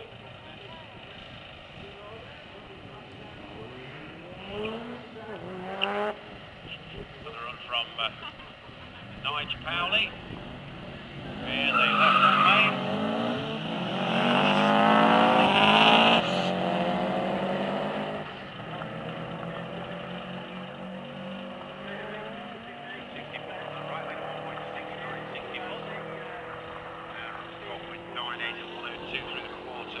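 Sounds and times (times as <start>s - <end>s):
car engines revving hard: 0.0s - 30.0s
tyre squeal: 11.6s - 12.8s.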